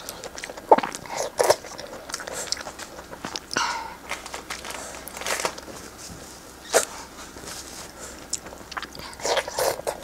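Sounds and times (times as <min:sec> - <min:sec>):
wet chewing: 0:00.0 - 0:05.7, 0:07.8 - 0:10.0.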